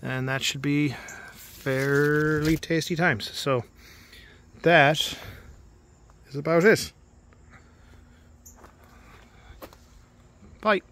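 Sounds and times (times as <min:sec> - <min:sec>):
faint steady hum: 0:00.0 - 0:10.9.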